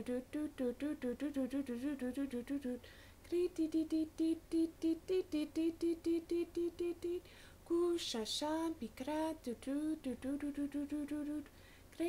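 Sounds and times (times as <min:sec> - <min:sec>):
woman singing syllables: 0:00.0 - 0:12.0.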